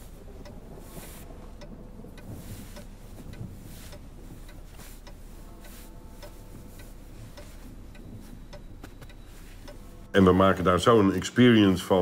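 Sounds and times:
mechanical clock ticking: 0.0s - 10.9s.

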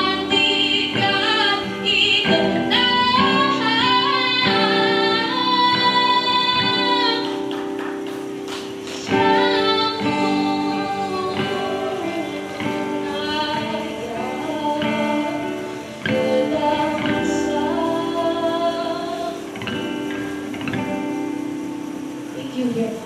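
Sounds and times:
person singing long notes: 0.0s - 7.6s, 8.9s - 20.0s
strummed acoustic guitar: 0.0s - 23.0s.

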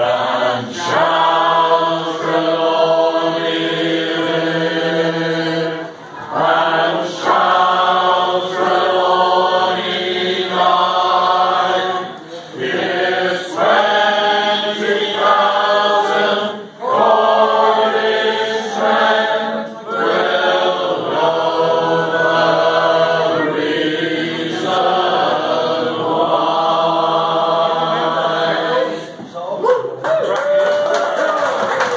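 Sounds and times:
crowd singing in harmony: 0.0s - 29.3s.

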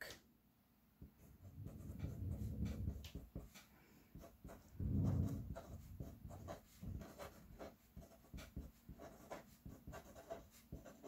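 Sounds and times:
marker writing on paper: 1.0s - 11.0s.

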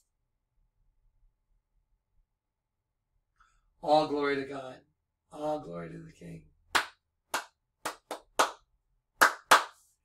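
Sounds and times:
person clapping hands: 6.7s - 9.9s.

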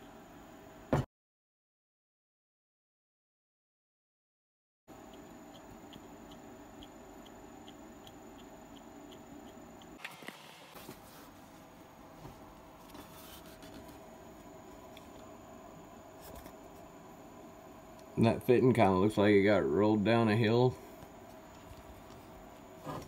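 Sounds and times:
faint regular ticking: 4.9s - 10.0s
room hiss: 4.9s - 23.0s.

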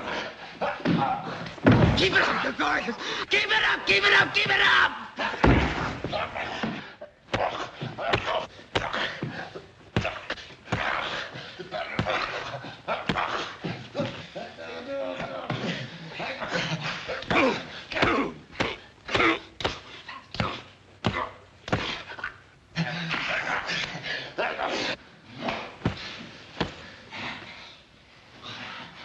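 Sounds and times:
men grunting: 0.0s - 27.5s
bodies thumping: 0.7s - 2.4s, 4.1s - 14.3s, 17.1s - 22.2s, 25.3s - 27.0s.

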